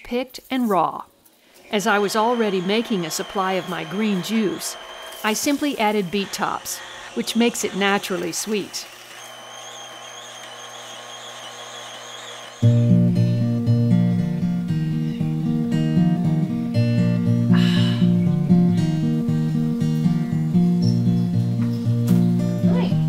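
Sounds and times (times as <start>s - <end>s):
juicer motor whining: 1.8s - 13.0s
instrumental music with guitar: 12.6s - 23.0s.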